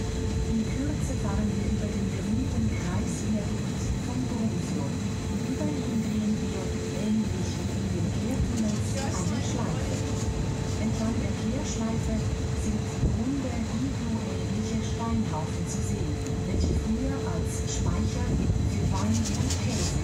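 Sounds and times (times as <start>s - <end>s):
train rumbling and humming: 0.0s - 20.0s
people talking: 0.5s - 10.2s, 10.8s - 20.0s.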